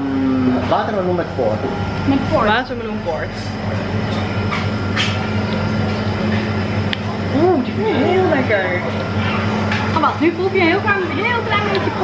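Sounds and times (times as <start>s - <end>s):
low electric hum of cooling machinery: 0.0s - 12.0s.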